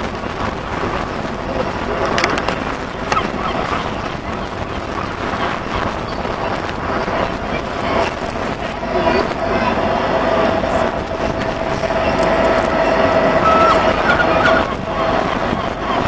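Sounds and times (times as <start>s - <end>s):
steam train rumbling: 0.0s - 16.0s.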